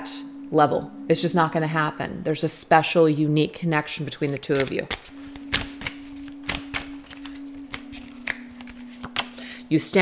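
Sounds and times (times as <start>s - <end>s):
faint steady hum: 0.0s - 10.0s
cards shuffling and flicking: 4.3s - 9.4s.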